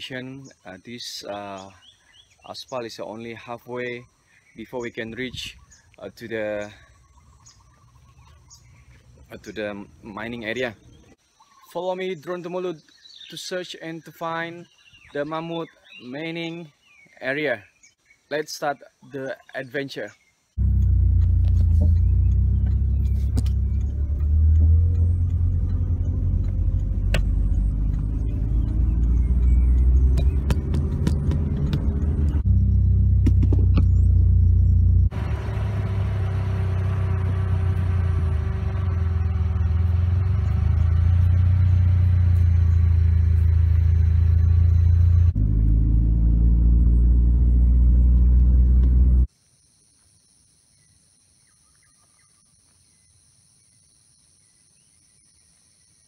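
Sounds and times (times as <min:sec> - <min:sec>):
car engine and road noise: 0:04.7 - 0:11.2, 0:20.5 - 0:49.3
sharp clicks and knocks: 0:20.7 - 0:32.4, 0:33.2 - 0:34.0
insects buzzing: 0:47.2 - 0:56.0.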